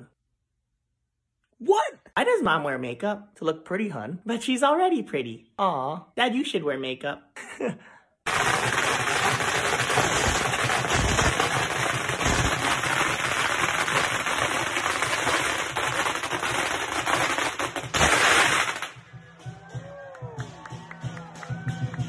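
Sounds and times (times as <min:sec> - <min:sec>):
firecrackers going off: 0:08.3 - 0:19.7.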